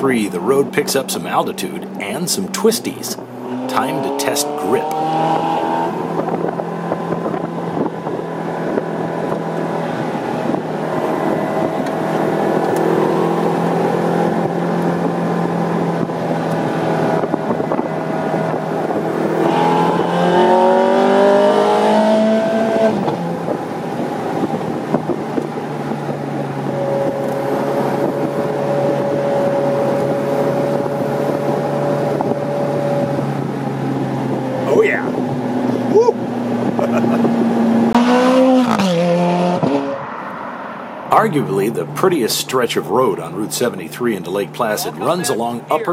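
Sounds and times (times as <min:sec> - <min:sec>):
car engine revving: 0:00.0 - 0:45.9
road noise: 0:00.0 - 0:45.9
wind noise: 0:03.0 - 0:40.4.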